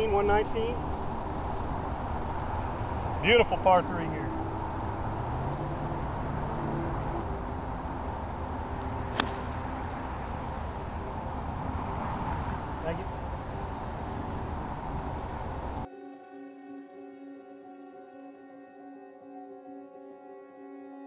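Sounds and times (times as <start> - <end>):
outdoor background noise: 0.0 - 15.9
golf club striking ball: 9.0 - 11.1.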